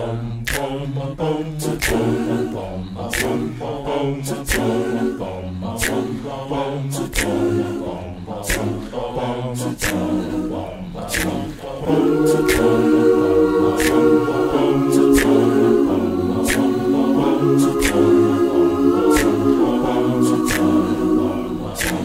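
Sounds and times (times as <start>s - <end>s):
a cappella choir singing: 0.0s - 22.0s.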